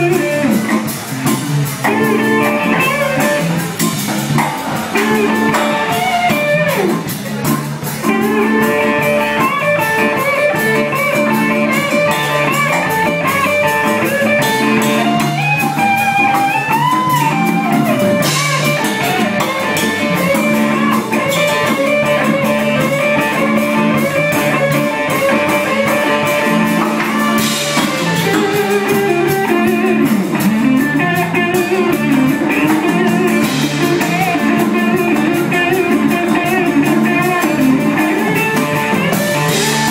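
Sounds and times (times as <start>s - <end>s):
blues-rock band playing: 0.0s - 39.9s
drum cymbals: 0.0s - 39.9s
electric guitar bending notes: 0.0s - 39.9s.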